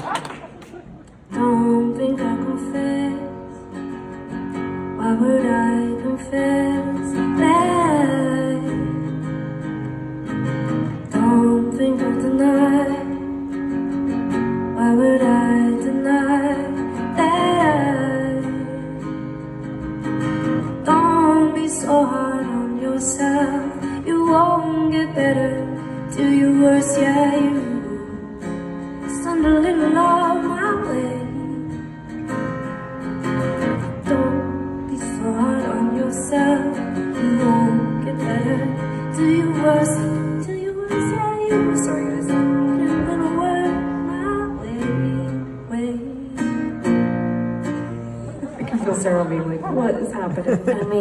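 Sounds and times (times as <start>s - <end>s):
acoustic guitar strumming: 1.2s - 51.0s
woman singing: 1.3s - 3.5s, 4.9s - 9.3s, 11.1s - 13.6s, 14.7s - 19.2s, 20.6s - 31.9s, 33.8s - 46.9s.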